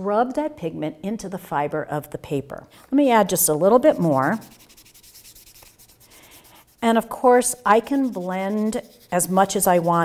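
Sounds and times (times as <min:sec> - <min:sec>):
cloth rubbing chalk on paper: 0:03.6 - 0:10.0.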